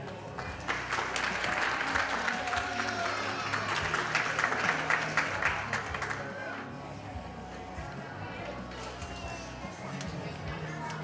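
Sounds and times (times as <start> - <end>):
background music: 0.0 - 11.0
audience applause: 0.3 - 6.4.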